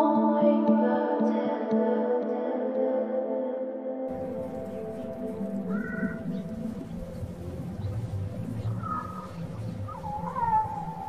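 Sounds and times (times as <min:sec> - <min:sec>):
faint music: 0:00.0 - 0:11.0
steady low rumble: 0:04.1 - 0:11.0
high animal-like call: 0:05.6 - 0:06.4, 0:08.6 - 0:11.0.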